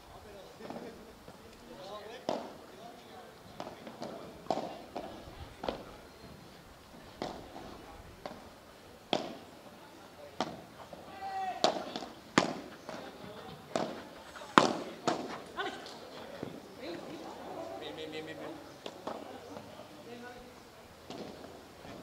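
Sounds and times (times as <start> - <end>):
rackets striking ball: 2.2 - 2.6, 3.5 - 6.0, 7.2 - 8.5, 9.1 - 17.2, 18.7 - 19.8, 21.0 - 22.0
ball bouncing on court: 11.6 - 15.4.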